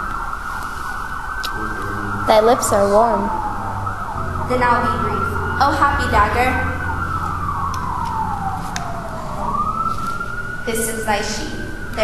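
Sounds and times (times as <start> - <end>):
siren wailing: 0.0 - 12.0.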